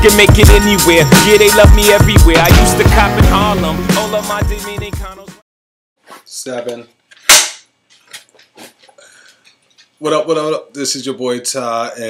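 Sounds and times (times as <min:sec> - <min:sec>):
clapperboard snapping shut: 0:07.2 - 0:07.6.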